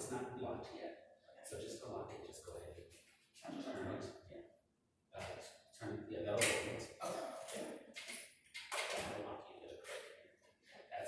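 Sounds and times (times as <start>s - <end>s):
person talking: 0.0s - 2.8s, 3.4s - 4.4s, 5.2s - 7.8s.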